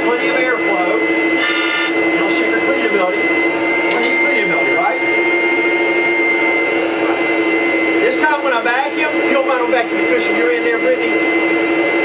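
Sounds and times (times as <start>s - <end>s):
vacuum cleaner running: 0.0s - 12.0s.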